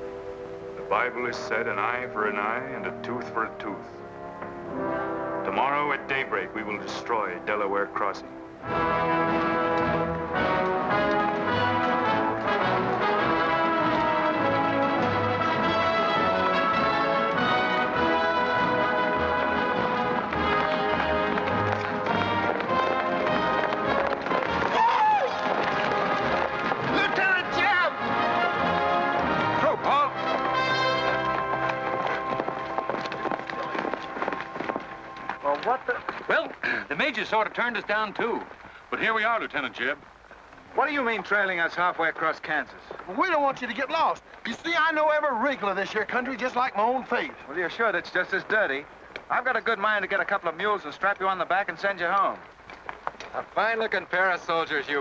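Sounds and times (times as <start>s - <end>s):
orchestral film music: 0.0s - 38.5s.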